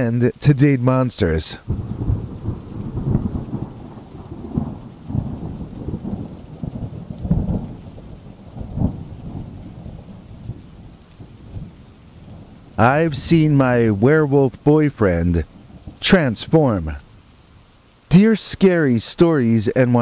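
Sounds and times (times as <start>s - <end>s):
steady rain: 0.0s - 20.0s
rolling thunder: 1.6s - 17.0s.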